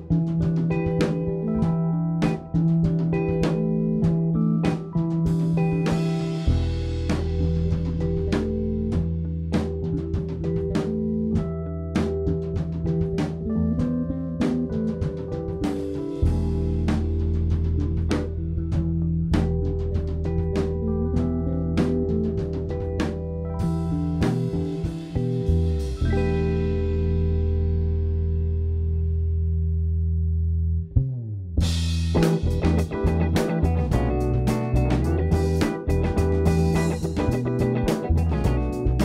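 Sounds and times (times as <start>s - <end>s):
rock band playing instrumental: 0.0s - 27.6s, 31.7s - 39.0s
low bass note: 16.2s - 39.0s
sharp drum strikes: 31.9s - 39.0s.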